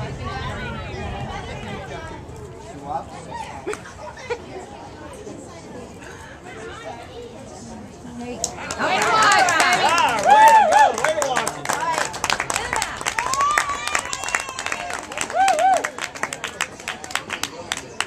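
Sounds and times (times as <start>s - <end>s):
hand-clapping: 8.4s - 18.0s
spectators cheering and shouting: 8.6s - 16.2s.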